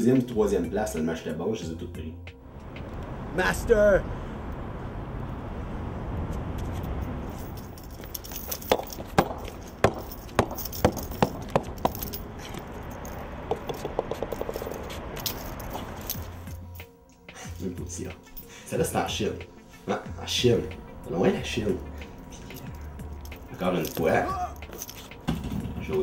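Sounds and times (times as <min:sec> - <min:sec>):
bowling ball rolling on concrete: 0:08.6 - 0:12.4, 0:13.3 - 0:15.1.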